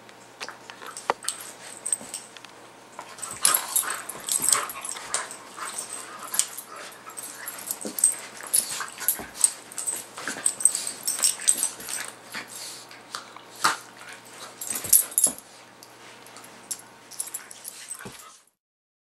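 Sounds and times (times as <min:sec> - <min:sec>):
dogs play-fighting vocal noises: 0:03.0 - 0:15.4, 0:16.4 - 0:18.4.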